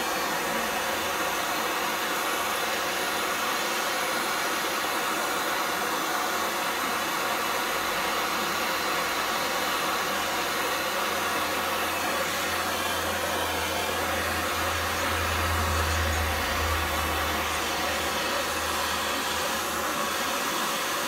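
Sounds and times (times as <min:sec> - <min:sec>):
gas torch hissing: 0:00.0 - 0:21.0
low hum: 0:14.4 - 0:18.8.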